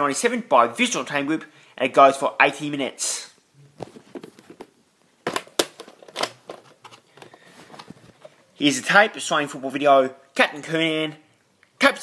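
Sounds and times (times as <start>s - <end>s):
plastic tape case clicks: 5.3s - 7.9s.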